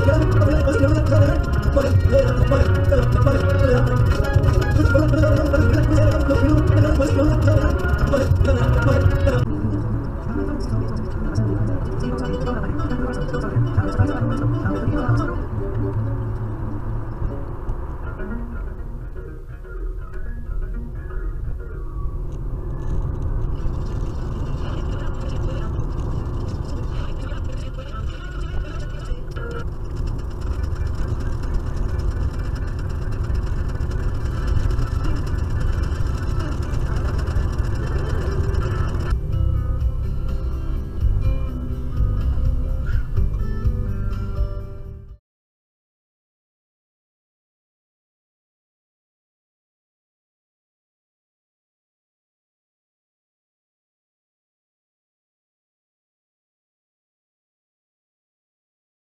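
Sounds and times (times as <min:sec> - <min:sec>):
person speaking: 0:00.0 - 0:16.9
music playing: 0:00.0 - 0:21.9, 0:23.8 - 0:45.2
car road and engine rumble: 0:00.0 - 0:45.1.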